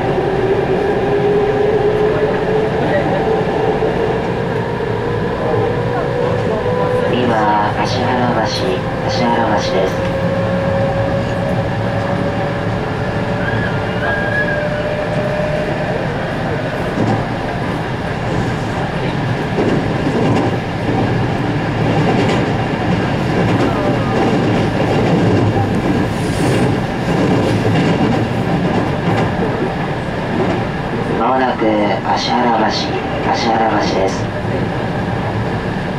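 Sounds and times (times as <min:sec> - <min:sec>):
train wheels rumbling on rails: 0:00.0 - 0:35.9.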